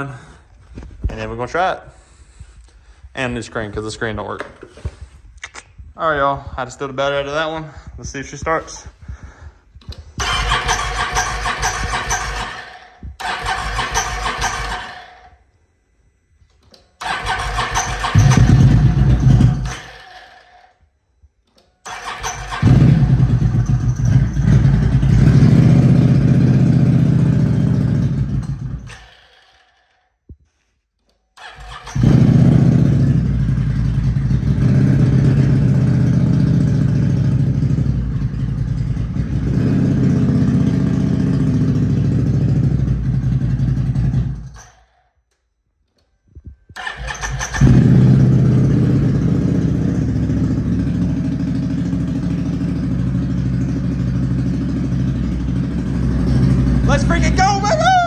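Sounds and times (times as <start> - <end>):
engine starting and running: 7.2 - 15.5, 16.5 - 30.1, 31.1 - 45.1, 45.9 - 58.0.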